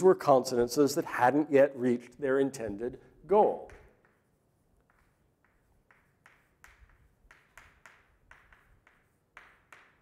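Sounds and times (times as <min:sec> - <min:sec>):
chalk scratching on blackboard: 0:04.0 - 0:10.0.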